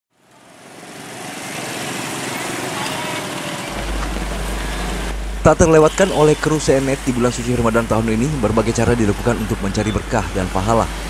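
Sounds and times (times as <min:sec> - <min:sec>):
small motorcycle engines: 0:00.2 - 0:05.1
voices: 0:02.4 - 0:11.0.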